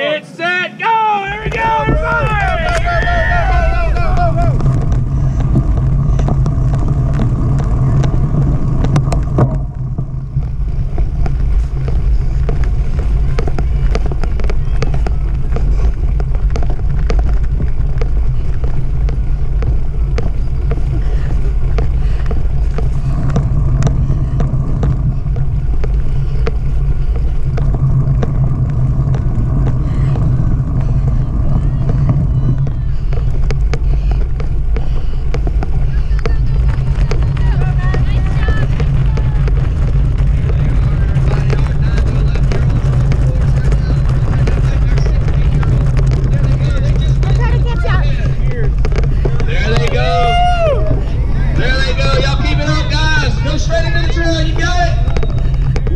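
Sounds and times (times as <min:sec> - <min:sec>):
bike rattling over ground: 0:01.3 - 0:55.9
wind rumble on microphone: 0:01.4 - 0:55.9.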